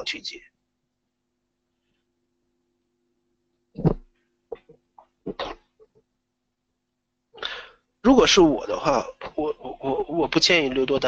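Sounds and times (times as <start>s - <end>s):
man speaking: 0.0s - 0.5s, 8.0s - 11.0s
faint electrical hum: 0.0s - 11.0s
man sneezing and coughing noises: 5.3s - 5.8s
man breathing in: 7.4s - 7.9s.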